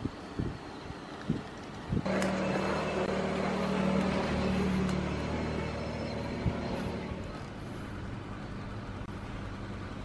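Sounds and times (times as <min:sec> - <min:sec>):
vehicle engine humming: 0:00.9 - 0:10.0.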